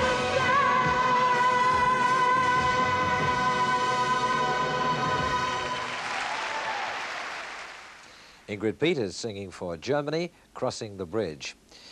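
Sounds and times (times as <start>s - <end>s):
audience applause: 5.4s - 8.1s.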